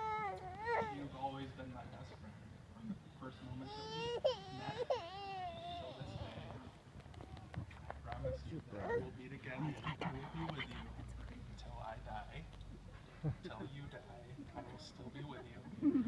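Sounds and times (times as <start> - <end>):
high-pitched crying: 3.7 - 6.4.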